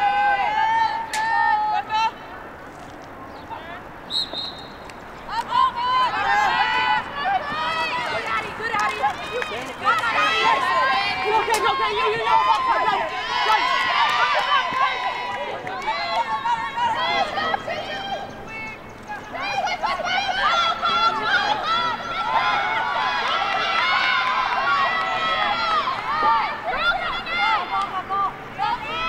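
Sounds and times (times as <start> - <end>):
women shouting and calling out: 0.0 - 2.3, 5.3 - 29.0.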